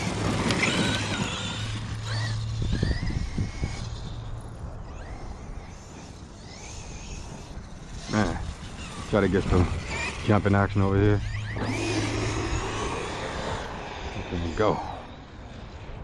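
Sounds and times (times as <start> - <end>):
electric motor whining: 0.0 - 16.0.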